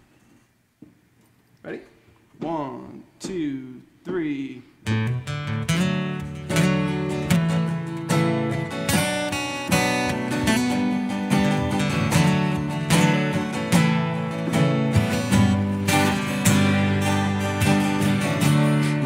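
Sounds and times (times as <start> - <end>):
acoustic guitars strumming: 4.1 - 19.0.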